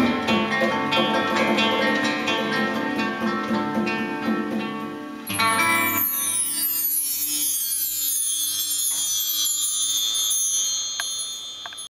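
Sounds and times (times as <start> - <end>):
bar chimes ringing: 5.3 - 11.9.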